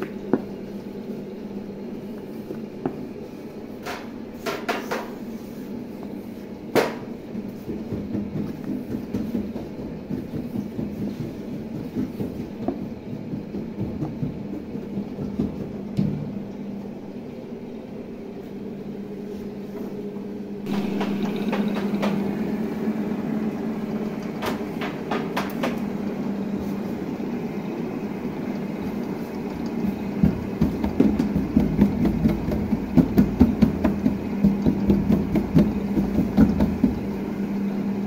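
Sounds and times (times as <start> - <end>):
dough sheeter machine humming: 0.0 - 38.0
rolling pin rolling dough: 1.8 - 16.3, 20.7 - 38.0.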